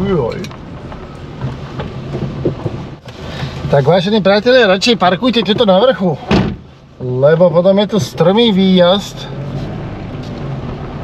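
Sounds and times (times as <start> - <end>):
tyre and suspension knocks: 1.4 - 2.9.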